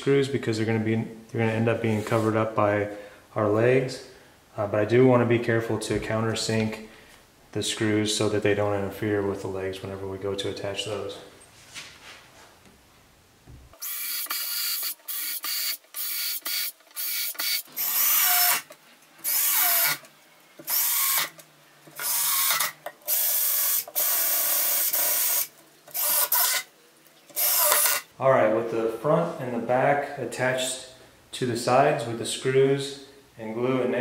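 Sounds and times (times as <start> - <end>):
cordless drill driving screws: 13.8 - 21.4, 22.0 - 26.7, 27.4 - 28.1.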